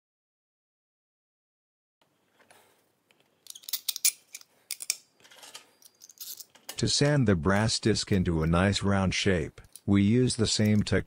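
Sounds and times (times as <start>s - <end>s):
small metal parts clicking: 3.4s - 6.8s.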